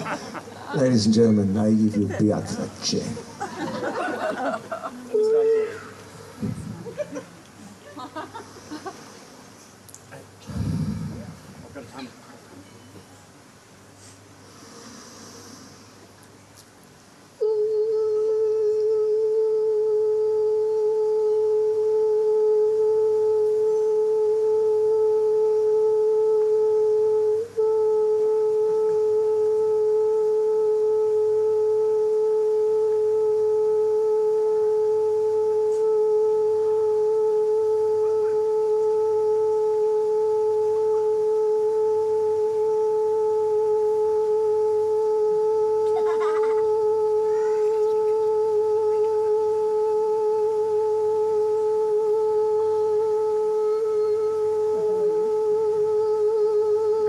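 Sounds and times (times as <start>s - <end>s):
person singing a long note: 5.1s - 7.2s, 17.4s - 57.0s.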